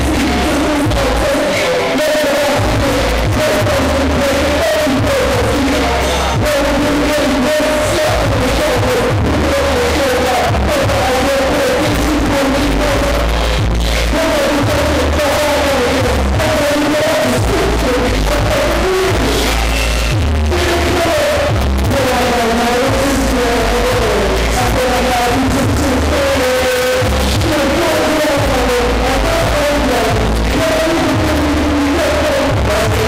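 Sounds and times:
hip-hop music over sound system: 0.0 - 33.0.

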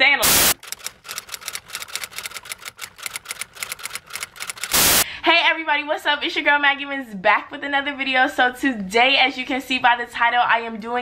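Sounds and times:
typewriter key clicks: 0.6 - 4.8.

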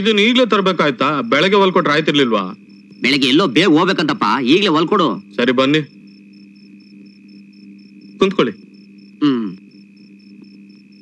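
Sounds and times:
faint pulsing high-pitched tone: 0.0 - 11.0
low hum of film soundtrack: 0.0 - 11.0.

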